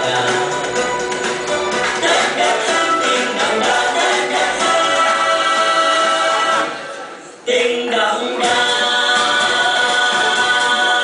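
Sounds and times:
singing over backing music: 0:00.0 - 0:11.0.

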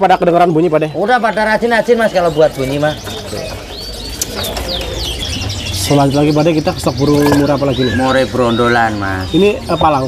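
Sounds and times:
birds chirping: 0:00.0 - 0:10.0
high whistled bird calls: 0:02.2 - 0:10.0.

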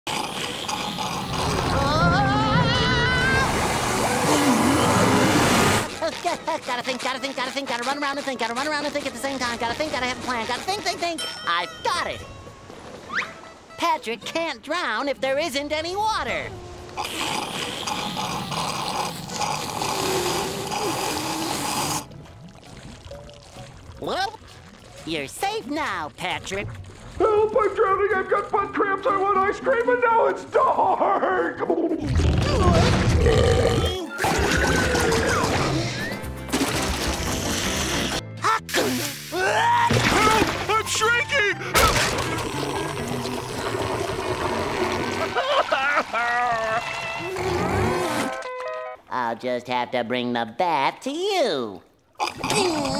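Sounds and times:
cartoon straw slurp: 0:00.1 - 0:02.1, 0:03.4 - 0:09.9, 0:16.9 - 0:23.7, 0:32.1 - 0:39.6, 0:41.8 - 0:48.5, 0:52.2 - 0:52.9
background music: 0:01.8 - 0:17.2, 0:33.1 - 0:44.2
water sloshing in a bucket: 0:22.0 - 0:28.6.

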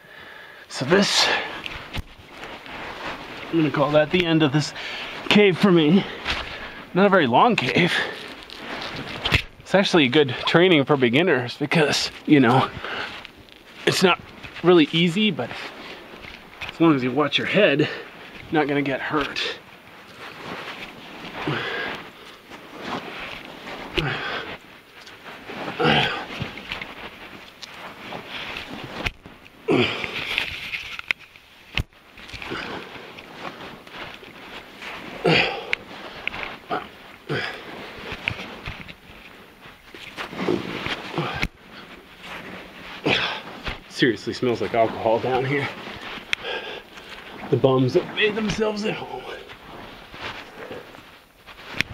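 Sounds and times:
body scraping against rock: 0:00.8 - 0:51.9
man breathing hard and grunting: 0:21.4 - 0:22.0, 0:23.9 - 0:24.5.

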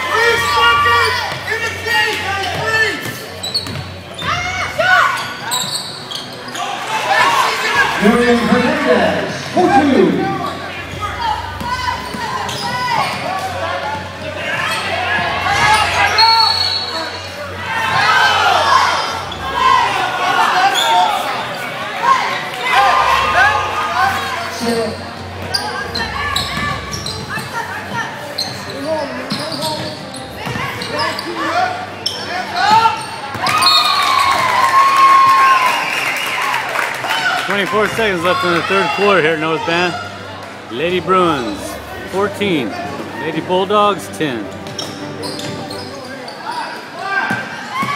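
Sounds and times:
players and crowd shouting: 0:00.0 - 0:44.5
sneakers squeaking on hardwood: 0:00.9 - 0:06.8, 0:10.1 - 0:17.1, 0:24.5 - 0:33.9, 0:44.4 - 0:47.9.

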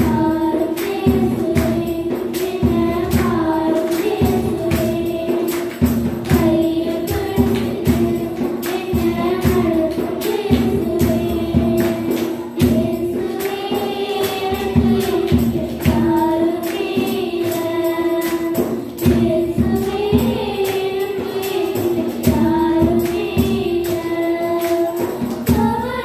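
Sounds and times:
girls singing into microphones: 0:00.0 - 0:26.0
musical accompaniment with steady beat: 0:00.0 - 0:26.0.

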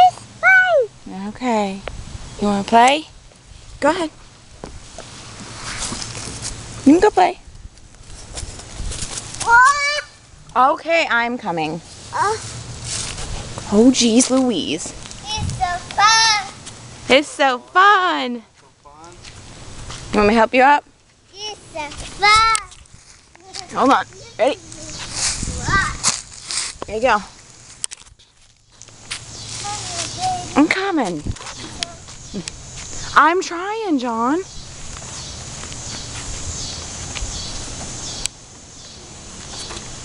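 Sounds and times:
young child calling: 0:00.0 - 0:01.0, 0:09.4 - 0:10.2, 0:12.1 - 0:12.5, 0:15.2 - 0:16.6, 0:21.4 - 0:22.8, 0:23.4 - 0:26.1, 0:29.6 - 0:30.6, 0:31.6 - 0:32.1
handheld camera rustling: 0:07.6 - 0:09.6, 0:21.8 - 0:33.0
faint child's voice: 0:09.4 - 0:10.1, 0:12.2 - 0:12.4
footsteps crunching on gravel: 0:11.8 - 0:16.9, 0:18.5 - 0:20.1, 0:21.1 - 0:33.2, 0:34.6 - 0:40.0.

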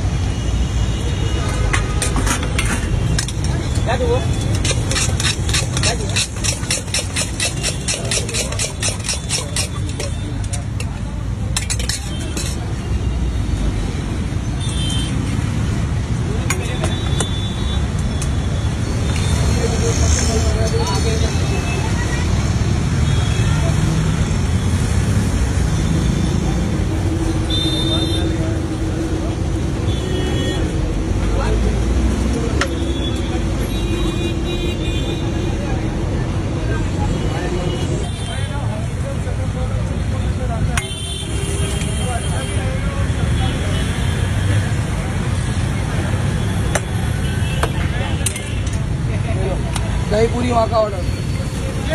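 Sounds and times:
road traffic noise: 0:00.0 - 0:51.9
people chattering: 0:00.8 - 0:14.6, 0:18.9 - 0:51.9.

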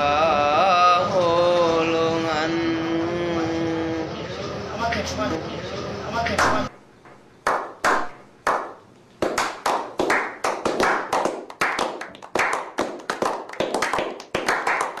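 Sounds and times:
men clapping hands: 0:06.4 - 0:06.6, 0:07.4 - 0:15.0.

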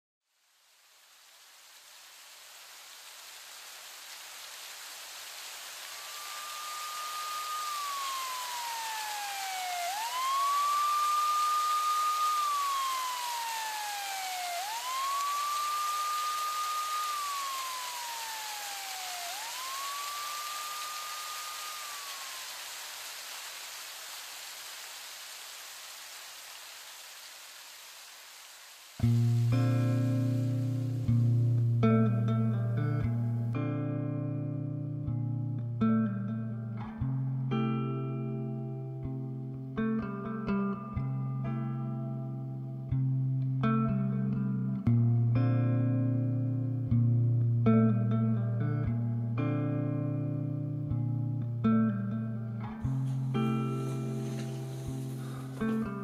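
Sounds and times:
steady hiss: 0:00.2 - 0:34.9, 0:48.6 - 0:56.0
siren-like wailing tone: 0:05.8 - 0:23.1
electric guitar and bass: 0:29.0 - 0:56.0.

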